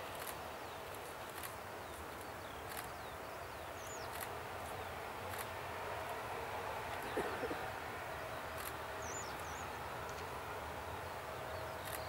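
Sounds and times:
small birds chirping: 0:00.0 - 0:05.5, 0:06.9 - 0:12.0.

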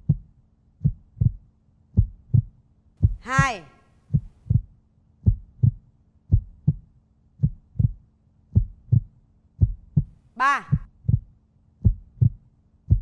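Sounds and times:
heartbeat thumps: 0:00.0 - 0:13.0.

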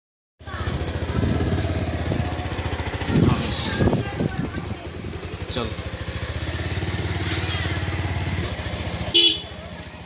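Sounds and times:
engine running with low pulse: 0:00.5 - 0:10.0.

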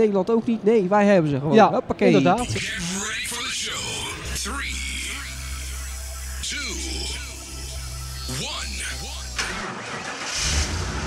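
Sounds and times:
low drone with pitch glides: 0:02.4 - 0:09.6
music: 0:02.4 - 0:09.6.

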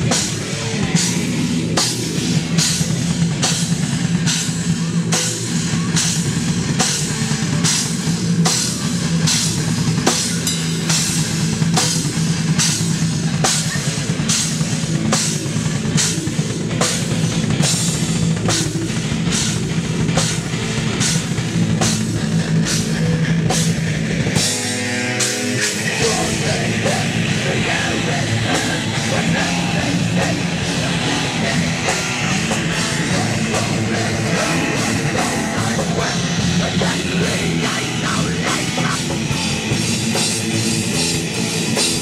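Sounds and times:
distorted guitars: 0:00.0 - 0:42.0
drum kit: 0:00.0 - 0:42.0.

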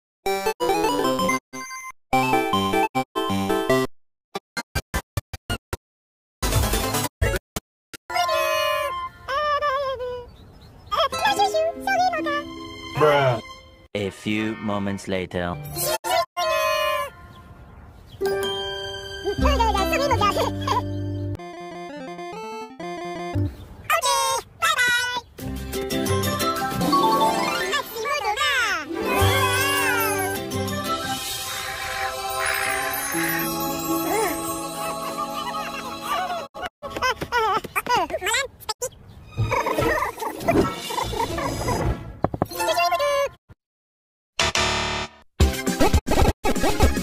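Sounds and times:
cartoon music: 0:08.1 - 0:09.9, 0:18.2 - 0:23.5, 0:26.0 - 0:28.2, 0:28.9 - 0:36.7
cartoon voices or creature noises: 0:27.4 - 0:30.4, 0:42.5 - 0:43.4
high wavering voice-like sound: 0:31.0 - 0:36.5.

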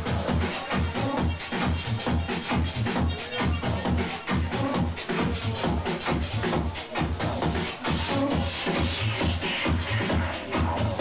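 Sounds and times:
heavy kick-drum beat: 0:00.0 - 0:11.0
hi-hats ticking: 0:00.0 - 0:11.0.

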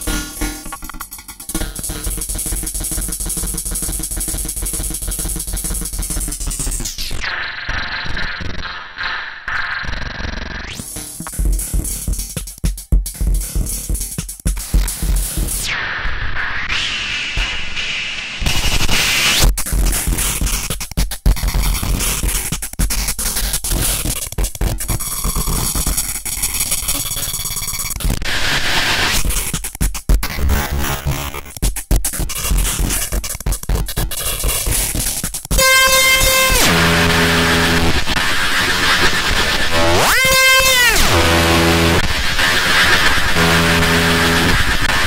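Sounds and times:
harsh glitch noise: 0:24.6 - 0:29.3, 0:35.5 - 0:45.0
loud buzzing tone: 0:35.5 - 0:45.0.

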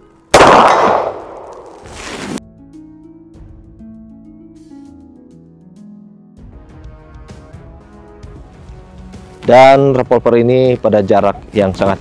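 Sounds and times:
revolver gunshot with ringing echo: 0:00.3 - 0:01.8.

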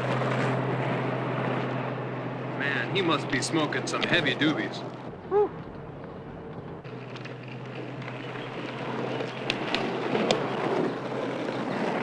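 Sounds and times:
road and wind noise: 0:00.0 - 0:12.0.

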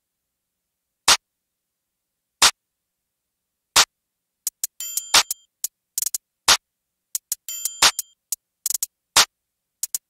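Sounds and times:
drum machine clap: 0:04.5 - 0:06.6, 0:07.2 - 0:10.0.

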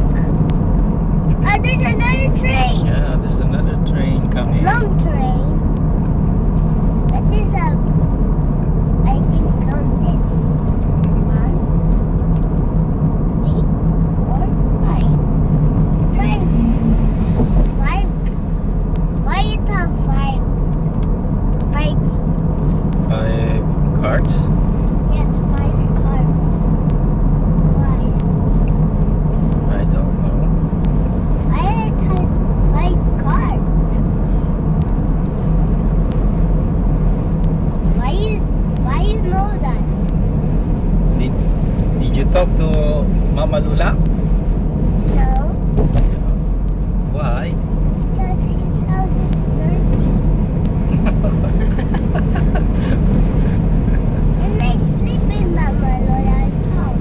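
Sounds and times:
car road and engine rumble: 0:00.0 - 0:57.0.

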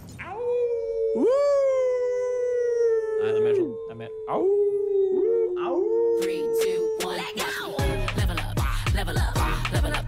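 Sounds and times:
man imitating wolf howl: 0:00.2 - 0:07.8.

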